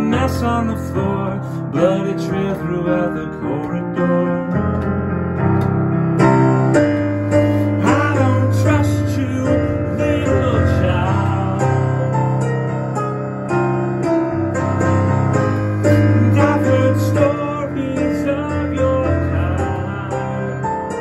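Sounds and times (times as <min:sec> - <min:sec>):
digital piano chords: 0:00.0 - 0:21.0.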